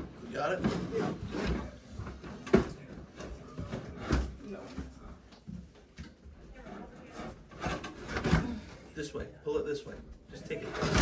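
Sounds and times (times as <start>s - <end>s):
plastic tote knocking and scraping: 10.7s - 11.0s.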